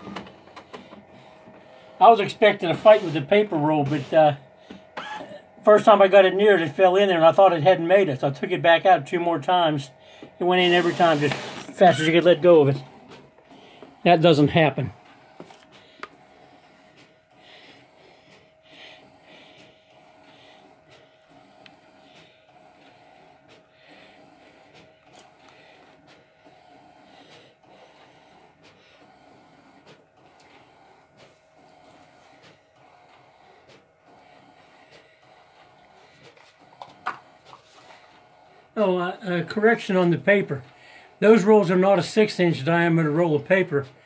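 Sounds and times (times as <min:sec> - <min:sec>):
inkjet printer printing: 0:00.0 - 0:44.0.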